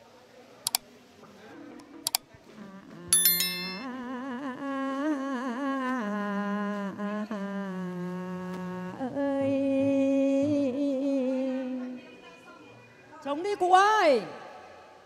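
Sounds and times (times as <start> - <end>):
sharp ringing strike: 3.2 - 3.8
woman singing through microphone: 3.8 - 12.5.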